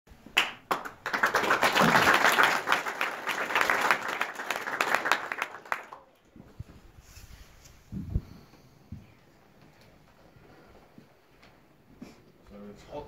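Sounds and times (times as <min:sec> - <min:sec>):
audience applauding: 0:00.4 - 0:06.2.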